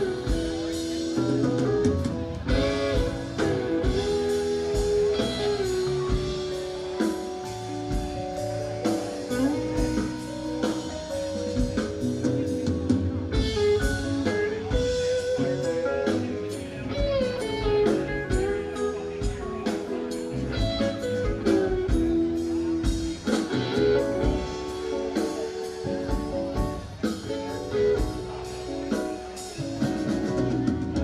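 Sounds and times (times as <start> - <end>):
lead guitar bent notes: 0.0 - 31.0
rock band jamming: 0.0 - 31.0.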